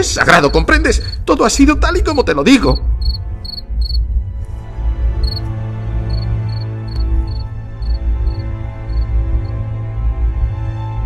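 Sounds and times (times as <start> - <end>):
deep low throb: 0.0 - 11.0
sustained tones background music: 0.0 - 11.0.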